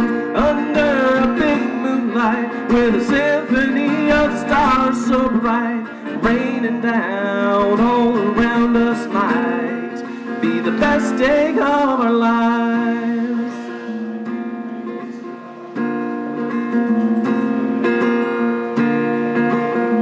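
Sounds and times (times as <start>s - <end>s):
man singing: 0.0s - 15.7s
acoustic guitar strumming: 0.0s - 20.0s.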